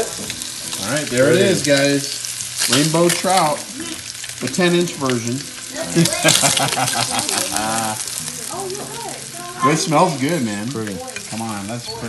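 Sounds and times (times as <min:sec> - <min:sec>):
fish sizzling in a frying pan: 0:00.0 - 0:12.0
people talking: 0:00.8 - 0:12.0.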